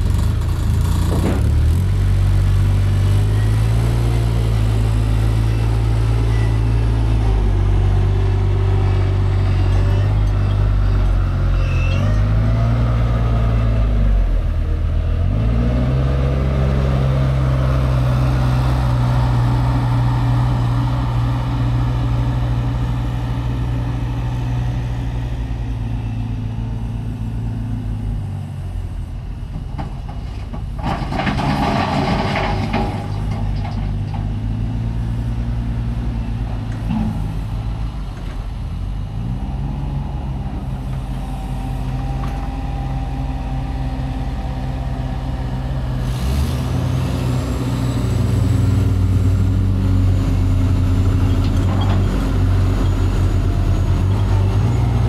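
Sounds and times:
diesel loader engine running: 0:00.0 - 0:55.0.

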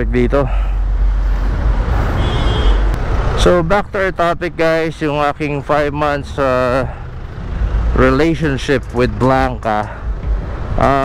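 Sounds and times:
road and traffic noise: 0:00.0 - 0:11.0.

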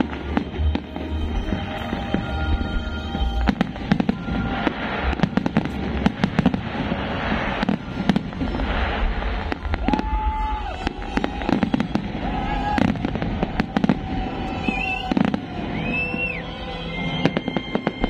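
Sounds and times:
fireworks bursting: 0:00.0 - 0:18.0
fireworks crackling: 0:00.0 - 0:18.0.

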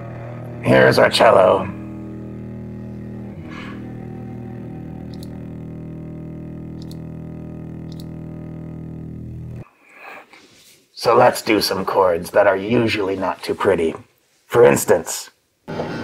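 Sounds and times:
low sustained cello note: 0:00.0 - 0:09.6.

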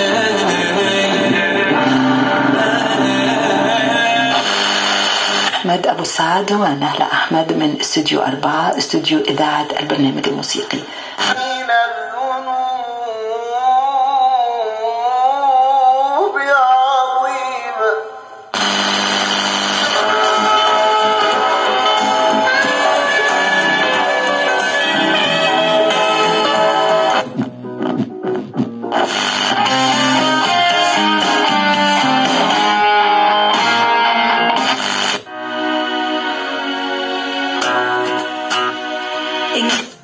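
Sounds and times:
loud band music: 0:00.0 - 0:04.6, 0:19.9 - 0:40.0
person singing on radio: 0:00.0 - 0:05.8, 0:10.6 - 0:27.3, 0:29.0 - 0:35.2.

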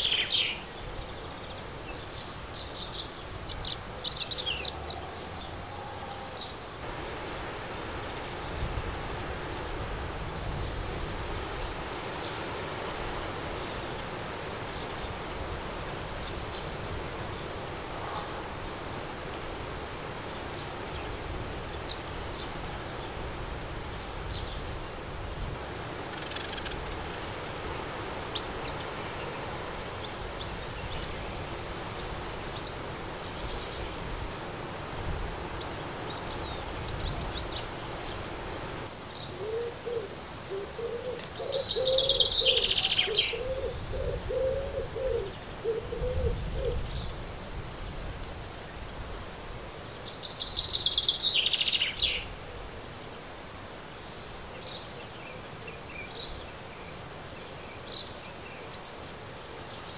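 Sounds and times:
bird song phrases: 0:00.0 - 0:09.4, 0:35.0 - 0:38.3, 0:38.9 - 0:47.2, 0:49.9 - 0:52.3, 0:53.5 - 0:59.9
low bird call: 0:39.3 - 0:47.0.

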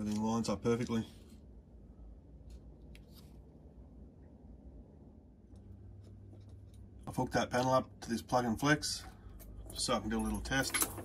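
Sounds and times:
light clicks and rubs of handling: 0:00.0 - 0:01.5, 0:02.4 - 0:03.6, 0:05.5 - 0:07.0
low steady hum: 0:00.0 - 0:11.0.

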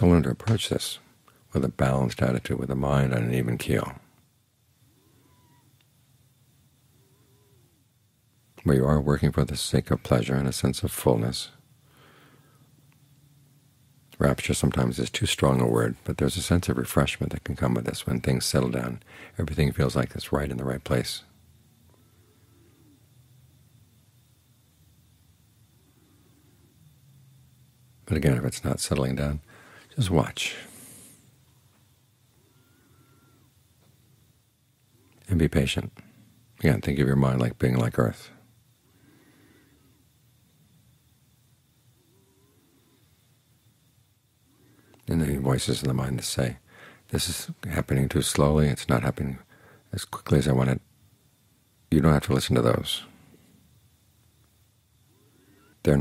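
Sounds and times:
faint room hum: 0:00.0 - 0:56.0
faint short wavering calls: 0:04.7 - 0:08.0, 0:21.4 - 0:24.7, 0:29.4 - 0:34.2, 0:55.0 - 0:56.0
faint thin whistle-like tone: 0:32.4 - 0:33.5, 0:55.1 - 0:55.8.

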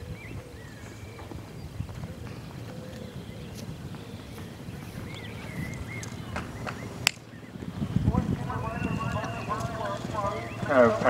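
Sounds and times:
horse hooves cantering on sand: 0:00.0 - 0:11.0
loudspeaker announcer voice: 0:08.0 - 0:11.0.

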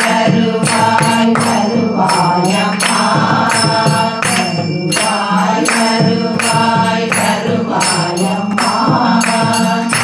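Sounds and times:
barrel drum beat: 0:00.0 - 0:10.0
group singing a chant: 0:00.0 - 0:10.0
hand claps: 0:00.0 - 0:10.0.

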